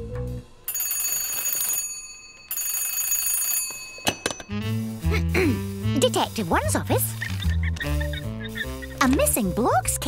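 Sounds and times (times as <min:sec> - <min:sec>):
telephone bell ringing: 0:00.7 - 0:04.6.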